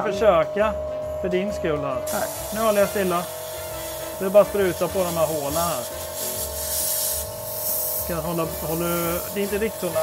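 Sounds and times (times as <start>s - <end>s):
background music: 0.0s - 10.0s
airbrush spraying: 2.1s - 10.0s.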